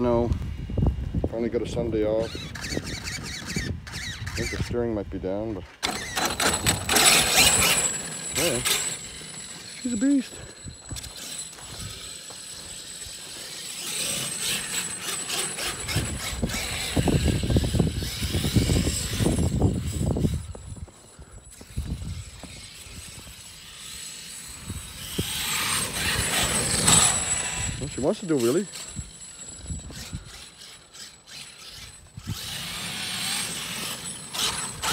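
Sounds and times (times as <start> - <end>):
electric motor whining: 2.0 - 4.8, 5.8 - 34.9
tyres churning through snow: 5.8 - 34.9.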